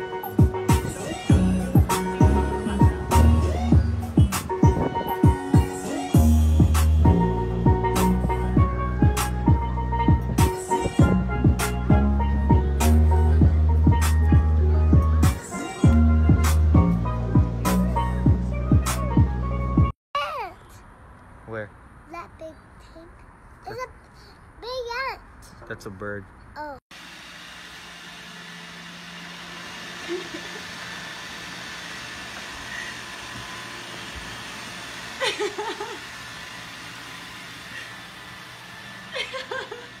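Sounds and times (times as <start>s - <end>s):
robot vacuum humming: 26.9s - 40.0s
person laughing: 30.0s - 30.8s, 35.2s - 36.1s, 39.1s - 40.0s.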